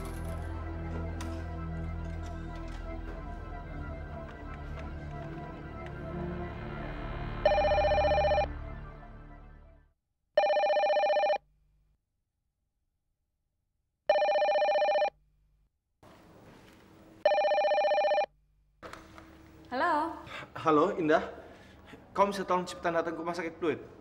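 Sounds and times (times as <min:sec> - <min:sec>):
background music: 0:00.0 - 0:10.0
telephone ringing: 0:07.4 - 0:08.5, 0:10.4 - 0:11.4, 0:14.1 - 0:15.2, 0:17.2 - 0:18.3.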